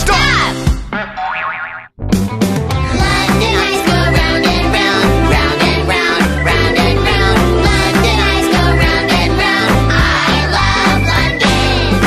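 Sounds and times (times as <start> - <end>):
upbeat children's song: 0.0 - 1.3, 2.4 - 12.0
cartoon boing effect: 1.0 - 1.9.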